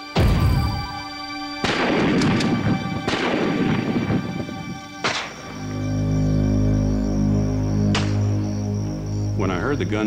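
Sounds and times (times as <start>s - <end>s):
faint music drone: 0.0s - 10.0s
echoing gunshots: 0.1s - 5.5s.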